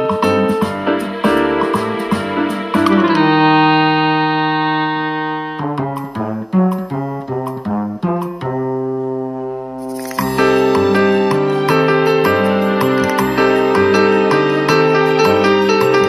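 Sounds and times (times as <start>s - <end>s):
keyboard music: 0.0s - 16.0s.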